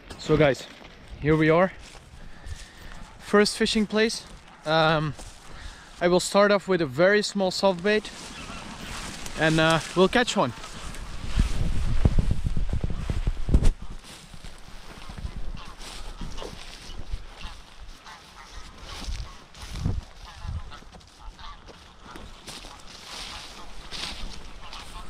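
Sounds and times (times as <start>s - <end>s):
geese honking: 2.2s - 11.4s, 13.8s - 25.0s.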